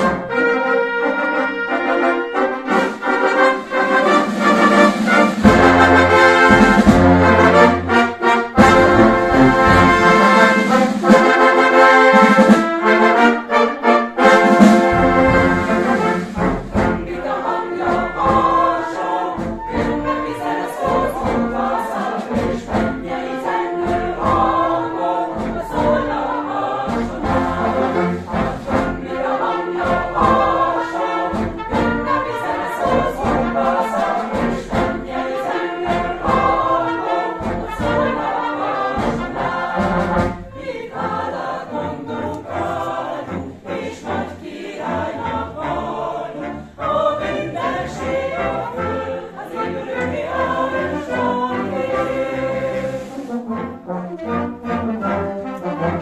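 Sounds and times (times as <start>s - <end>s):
choir singing: 0.0s - 56.0s
wind band playing: 0.0s - 56.0s.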